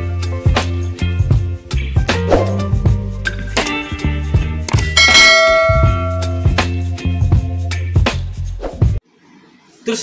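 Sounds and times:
background music with steady beat: 0.0 - 9.1
bell ding: 4.8 - 6.7.

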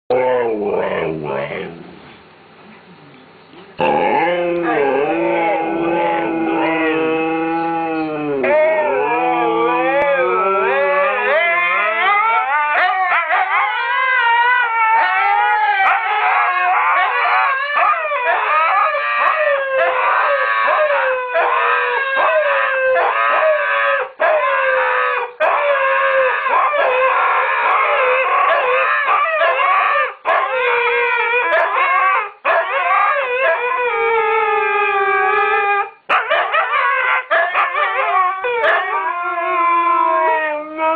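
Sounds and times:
husky howling: 3.8 - 40.9.

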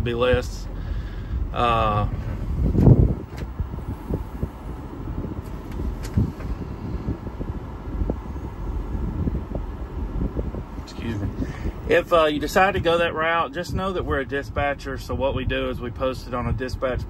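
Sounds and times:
diesel engine rumbling: 0.0 - 17.0.

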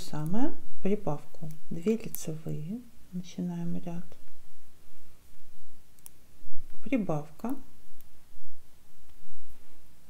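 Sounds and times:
metal knitting needles clicking: 6.0 - 6.2.

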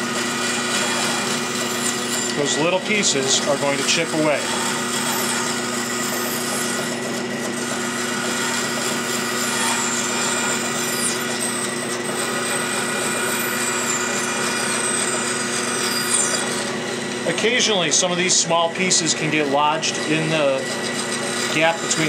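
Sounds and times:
bandsaw cutting wood: 0.0 - 22.0.

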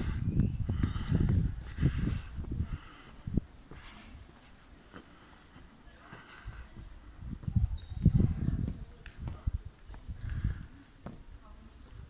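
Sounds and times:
wind buffeting microphone: 0.0 - 4.3, 6.2 - 10.8
footsteps on stone paving: 0.0 - 12.0.

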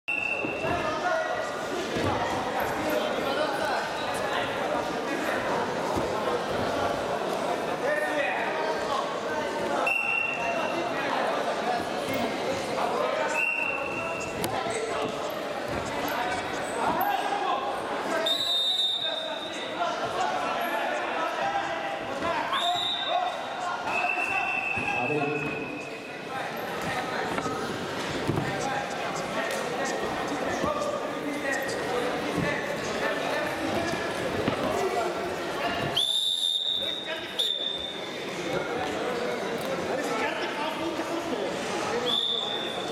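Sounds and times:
background voices in hall: 0.1 - 42.9.

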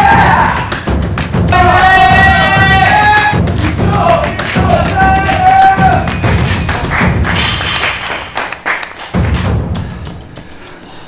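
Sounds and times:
loud background music: 0.0 - 10.9.

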